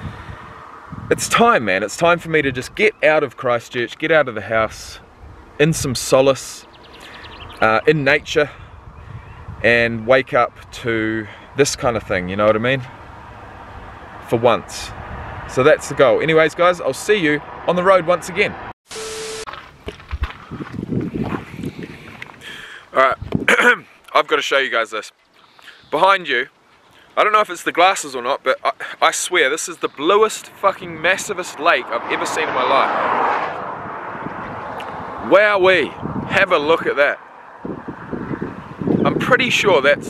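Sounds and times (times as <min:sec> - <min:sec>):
wind buffeting microphone: 0:00.0 - 0:03.0, 0:04.6 - 0:17.6, 0:19.7 - 0:23.6, 0:30.6 - 0:40.0
steady beep: 0:18.9 - 0:19.5.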